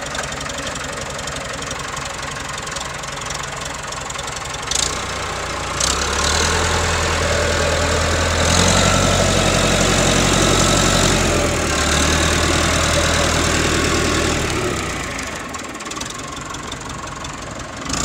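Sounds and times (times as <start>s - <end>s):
tractor diesel engine rumbling: 0.0s - 18.0s.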